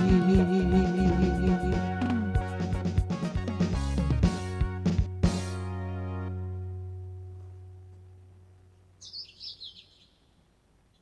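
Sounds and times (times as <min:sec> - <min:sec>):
held low chord: 0:00.0 - 0:09.0
high bird chirps: 0:09.0 - 0:11.0.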